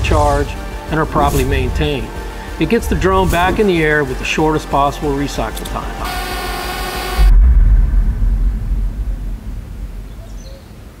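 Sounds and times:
deep sub-bass boom: 0:01.4 - 0:03.8, 0:07.2 - 0:11.0.

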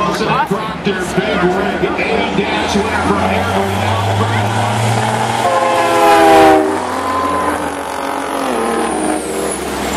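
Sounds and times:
diesel truck engines running: 0:00.0 - 0:09.9
air horn blast: 0:05.3 - 0:09.3.

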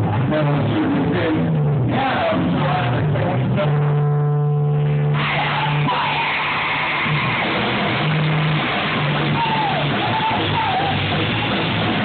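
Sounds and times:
drums: 0:00.0 - 0:04.1, 0:04.7 - 0:12.0
bass guitar: 0:00.0 - 0:12.0
distorted electric guitars: 0:00.0 - 0:12.0.

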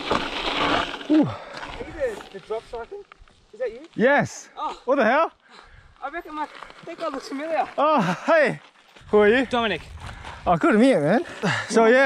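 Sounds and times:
bike tyres rolling over dirt: 0:00.0 - 0:04.0, 0:06.0 - 0:12.0
wind on camera microphone: 0:09.0 - 0:10.7.

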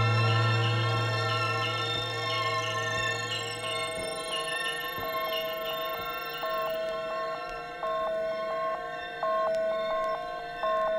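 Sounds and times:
two-note synthesizer music: 0:00.0 - 0:10.9.

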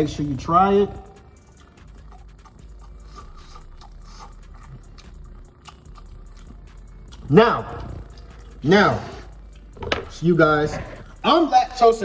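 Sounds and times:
person chewing: 0:01.6 - 0:09.8
mouth clicks and smacks: 0:01.8 - 0:08.6.

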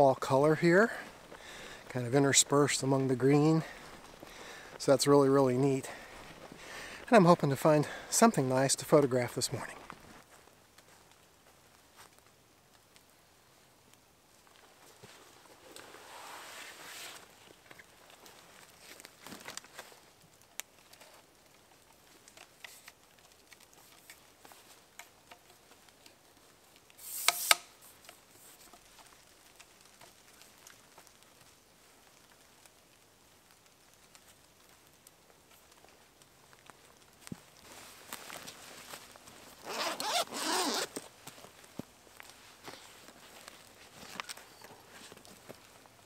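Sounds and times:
backpack zipper zipping: 0:39.6 - 0:40.9.

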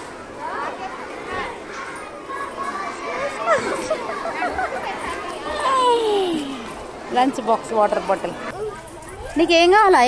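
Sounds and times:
background voice babble: 0:00.0 - 0:10.0
young children chattering: 0:00.0 - 0:10.0.

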